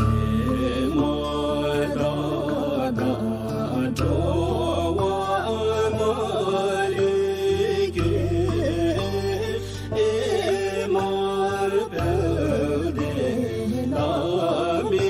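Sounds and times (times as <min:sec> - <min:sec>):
person chanting devotional melody: 0:00.0 - 0:15.0.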